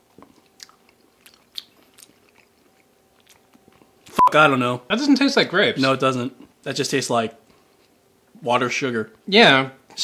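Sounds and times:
person chewing jelly: 0.0 - 4.1.

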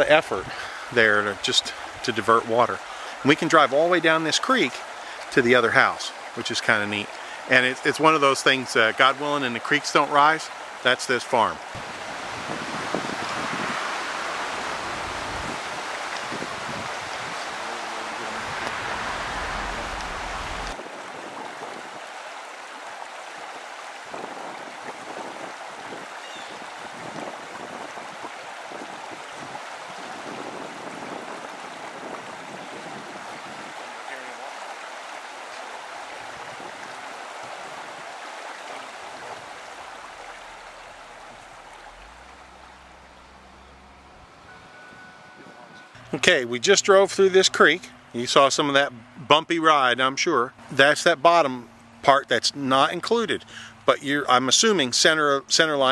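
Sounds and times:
water churned by vehicle tyres: 0.0 - 55.9.

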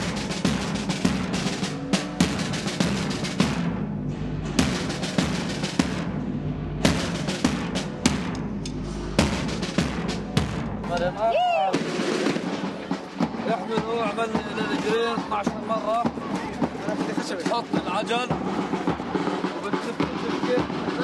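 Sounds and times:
bass drum beating: 0.0 - 21.0
snare drums beating: 0.0 - 21.0.

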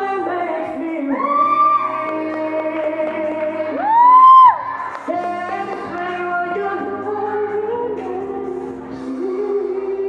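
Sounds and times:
pop backing track: 0.0 - 10.0.

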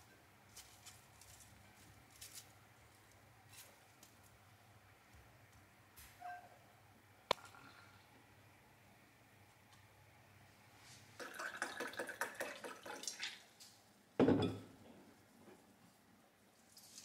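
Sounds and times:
faint squeak: 6.1 - 6.6.

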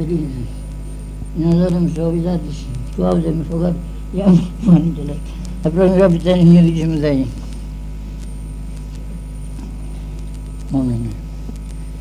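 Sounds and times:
high-pitched whine: 0.0 - 12.0
low electrical hum: 0.0 - 12.0.

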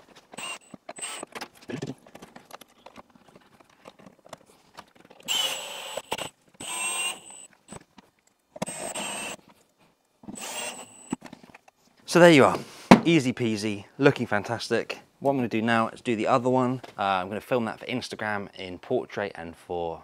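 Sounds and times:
cordless drill driving screws: 0.3 - 1.4, 5.2 - 7.8, 8.6 - 9.4, 10.3 - 11.2.

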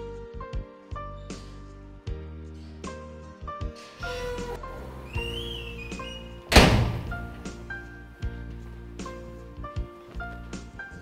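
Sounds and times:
background music: 0.0 - 11.0
door shutting thunk: 5.1 - 7.6.

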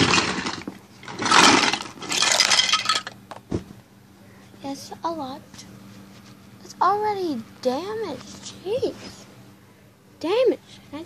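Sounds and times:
small plastic toys clattering: 0.0 - 3.4.

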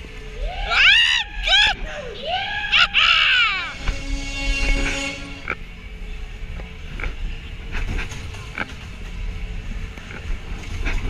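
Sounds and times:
riders screaming: 0.2 - 3.9
fairground music: 3.4 - 6.1.

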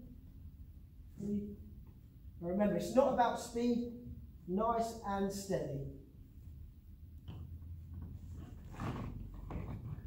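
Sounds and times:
low steady hum: 0.0 - 10.0
body movement on mat: 7.9 - 10.0.

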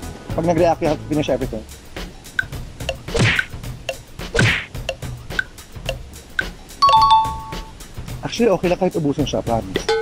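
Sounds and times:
timer tick: 2.4 - 3.0, 4.8 - 7.6
two-tone ding-dong chime: 6.8 - 7.7.

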